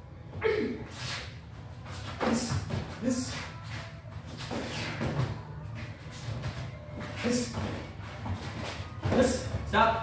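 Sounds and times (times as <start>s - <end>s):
feet shuffling on floor: 0.9s - 9.7s.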